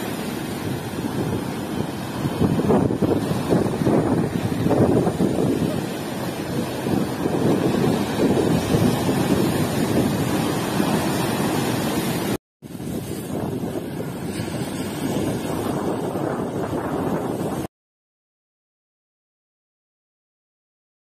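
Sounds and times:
surf breaking on rocky shore: 0.0s - 17.7s
wind buffeting microphone: 0.0s - 17.7s.

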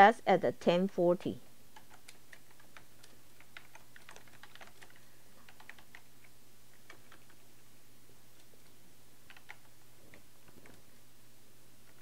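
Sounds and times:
typing on keyboard: 1.7s - 7.4s, 8.4s - 10.8s.

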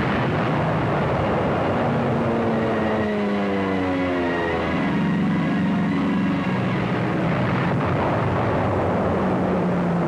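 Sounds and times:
propeller aircraft engines roaring: 0.0s - 10.0s.

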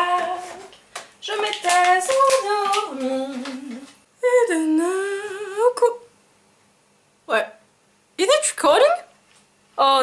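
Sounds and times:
woman singing: 0.0s - 6.1s.

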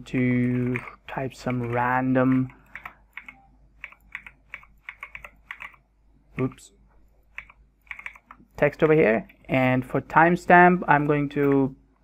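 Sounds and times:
computer keyboard typing: 0.4s - 5.8s, 7.3s - 8.5s.

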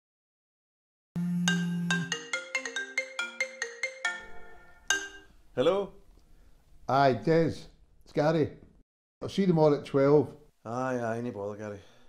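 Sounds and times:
phone marimba ringtone: 1.5s - 5.3s.

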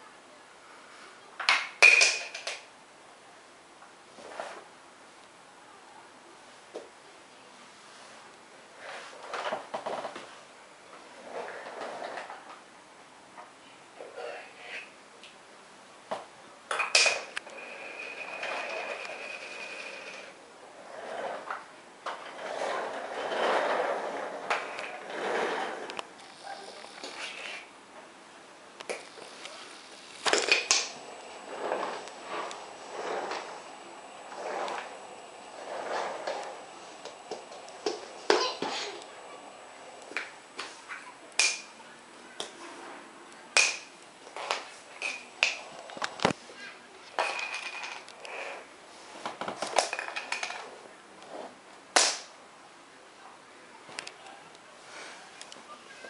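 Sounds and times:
plastic toy blocks clacking on floor: 1.5s - 2.7s, 49.4s - 50.7s.

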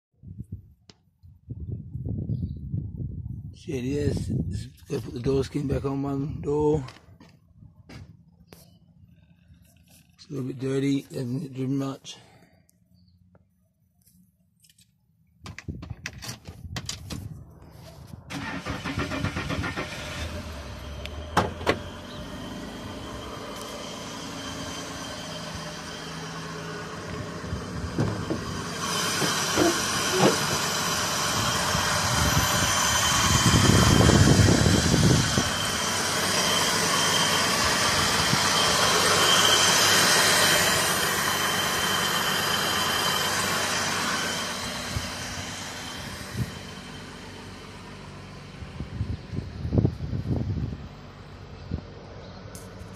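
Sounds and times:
car engine running: 18.3s - 52.9s.

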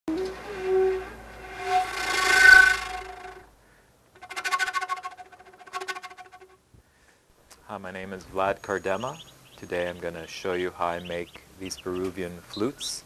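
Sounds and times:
end-blown flute playing: 0.1s - 3.5s, 4.2s - 6.6s.

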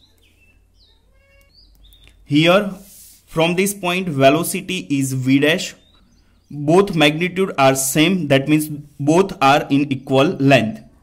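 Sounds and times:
faint high chirps: 0.0s - 2.8s.

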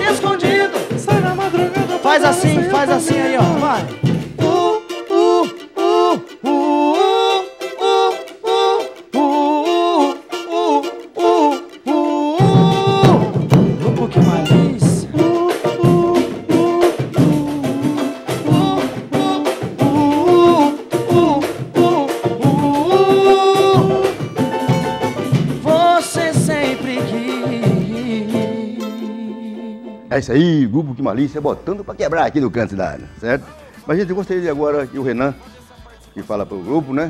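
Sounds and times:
low drums and percussion: 0.0s - 4.6s, 12.4s - 28.4s
person singing: 0.0s - 31.1s, 32.9s - 37.0s
cavaquinho and banjo: 0.0s - 37.0s.

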